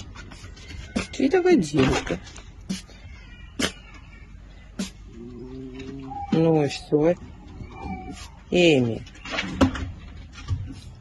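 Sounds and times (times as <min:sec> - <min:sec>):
fox giving sharp cries: 0:02.6 - 0:04.1, 0:04.7 - 0:08.6
fox whining: 0:02.6 - 0:09.0.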